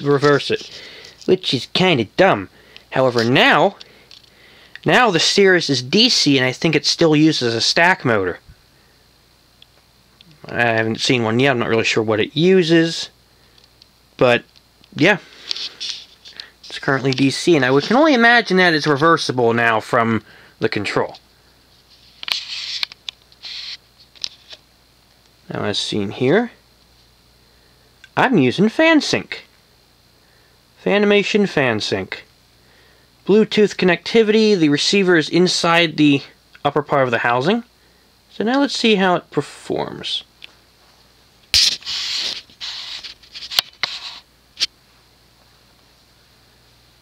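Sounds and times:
rustling and scraping handling noise: 0.0s - 1.6s, 3.0s - 4.3s, 15.0s - 19.0s, 20.9s - 24.7s, 40.5s - 45.7s
faint low hum: 0.0s - 47.0s.

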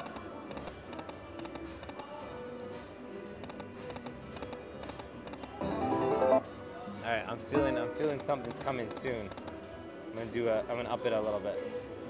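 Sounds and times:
slot machine win jingle: 5.6s - 6.5s, 7.6s - 8.3s
slot machine music: 5.6s - 6.6s, 7.6s - 9.2s.

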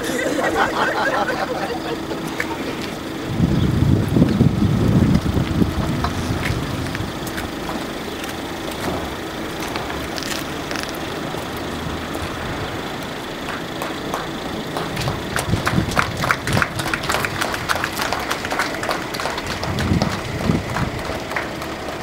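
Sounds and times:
outdoor background noise: 0.0s - 22.0s
low rumble on microphone: 1.9s - 11.2s, 14.6s - 18.3s, 19.2s - 21.4s
faint clicks and taps of footsteps: 5.1s - 9.0s.

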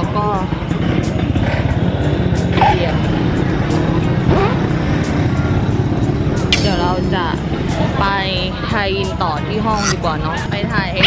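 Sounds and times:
street noise: 0.0s - 11.0s
vehicle engine running: 0.0s - 11.0s.

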